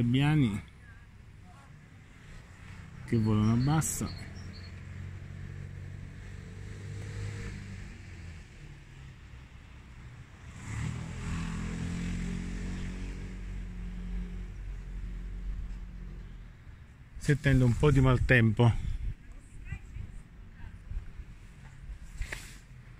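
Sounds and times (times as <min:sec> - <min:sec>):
vehicle engine hum: 0:00.0 - 0:22.9
louder engine passing: 0:02.4 - 0:09.2, 0:09.8 - 0:16.0.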